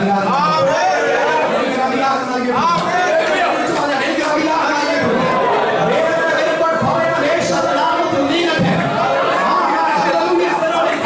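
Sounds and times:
man preaching into microphone: 0.0 - 11.0.

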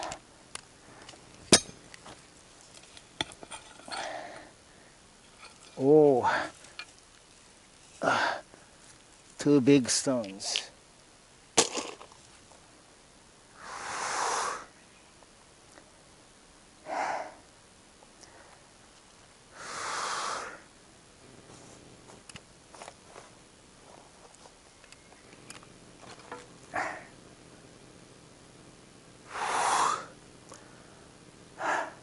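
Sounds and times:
man breathing out heavily: 3.9 - 5.0, 8.0 - 8.6, 13.6 - 14.7, 16.8 - 17.5, 19.5 - 20.7, 29.3 - 32.0.

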